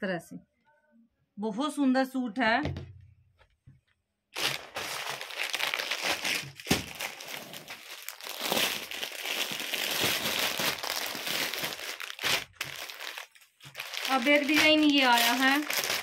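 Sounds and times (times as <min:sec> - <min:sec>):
plastic packets crinkling: 0:04.4 - 0:16.0.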